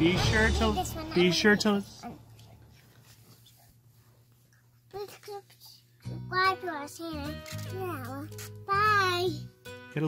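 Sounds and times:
soft handling sounds: 2.2s - 5.9s.

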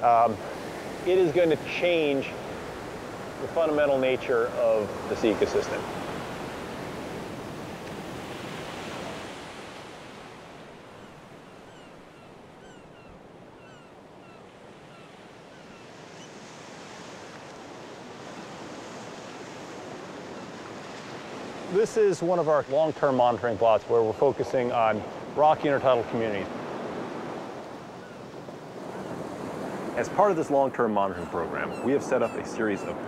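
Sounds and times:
ocean surf washing in: 0.0s - 11.4s, 16.0s - 33.0s.

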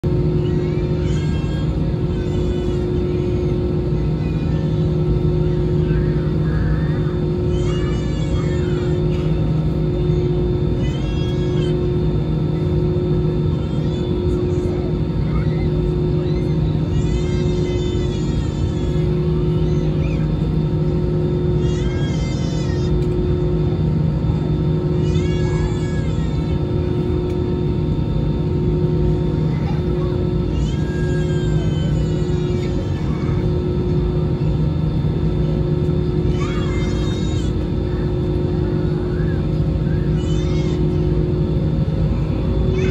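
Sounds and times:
aircraft cabin engine drone: 0.0s - 42.9s.

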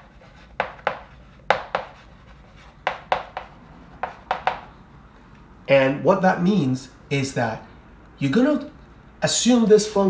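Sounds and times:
chalk tapping and scraping on chalkboard: 0.0s - 4.8s.

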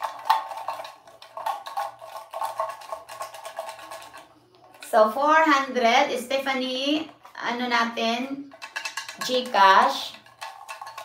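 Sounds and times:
paper slips rattling in cup: 0.0s - 5.2s, 8.4s - 11.0s.

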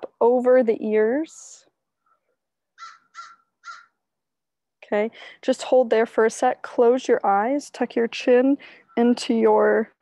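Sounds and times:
bird calling: 2.0s - 4.0s.

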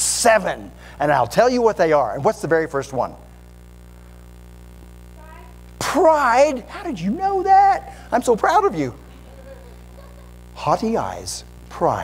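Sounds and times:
low electrical hum: 0.0s - 12.0s
breath into microphone: 0.8s - 1.0s.

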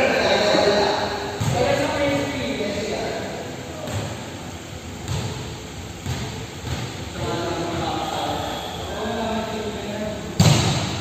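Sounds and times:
indoor gym hall background noise: 0.0s - 11.0s.

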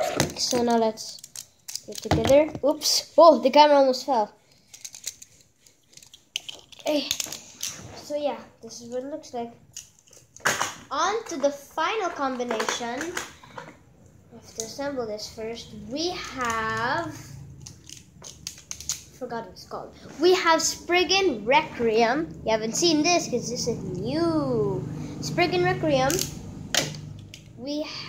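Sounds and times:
plastic parts clicking: 0.2s - 2.7s, 4.6s - 7.7s, 17.5s - 19.1s.

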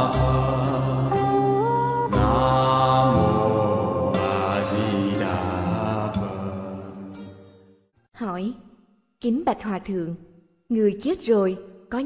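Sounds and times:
chanting in long sustained notes: 0.0s - 7.2s.

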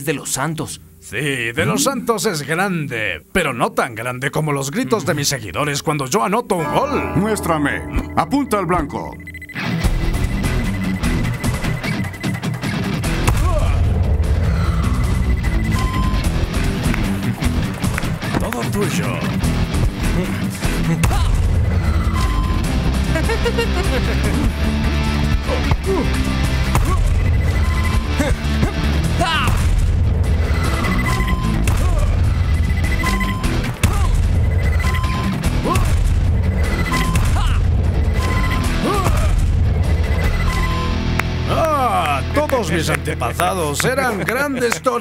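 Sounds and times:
short high electronic beeps: 6.6s - 12.5s, 38.0s - 38.7s, 39.9s - 41.0s
cartoon background music: 6.6s - 45.0s.

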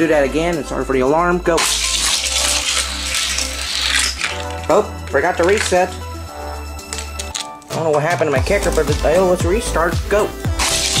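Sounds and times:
toy car wheels rattling on plastic track: 1.8s - 4.7s.

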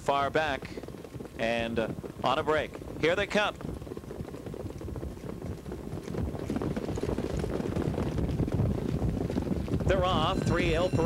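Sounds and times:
hoofbeats of trotting horses: 0.0s - 11.0s.

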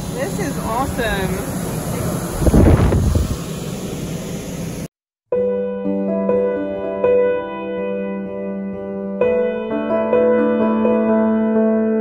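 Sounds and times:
low rumbling on microphone: 0.9s - 3.5s.

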